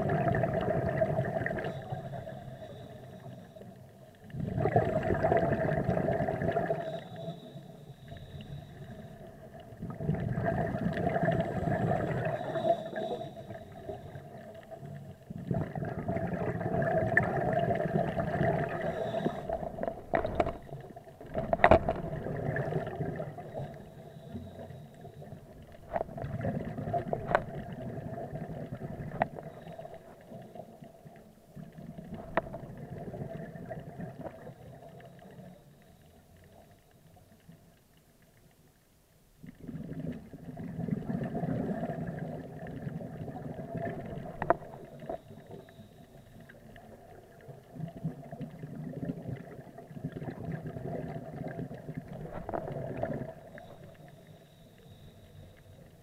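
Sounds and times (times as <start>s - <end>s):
underwater exhaled bubbles gurgling: 0.0s - 37.9s, 39.4s - 56.0s.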